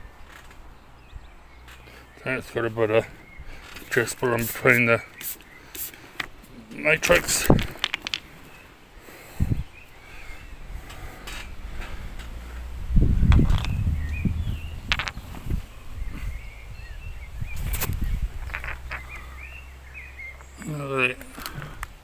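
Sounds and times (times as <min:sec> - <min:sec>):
small birds chirping: 0:00.0 - 0:22.0
stone clicking on stone: 0:07.4 - 0:08.3, 0:14.9 - 0:15.4, 0:18.4 - 0:19.3
low microphone rumble: 0:09.4 - 0:19.7.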